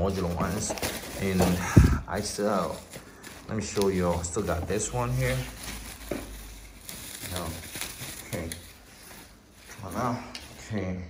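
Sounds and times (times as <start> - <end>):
bubble wrap crinkling: 0.0 - 10.8.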